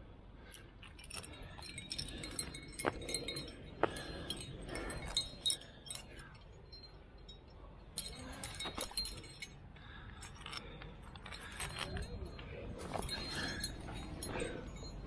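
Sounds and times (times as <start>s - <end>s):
climbing gear clinking: 0.4s - 15.0s.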